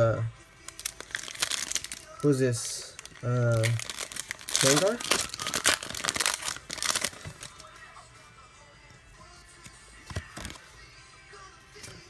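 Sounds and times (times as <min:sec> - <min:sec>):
faint background music: 0:00.0 - 0:12.0
foil wrapper crinkling: 0:00.6 - 0:07.7, 0:10.1 - 0:10.6
playing cards clicking: 0:10.0 - 0:10.6.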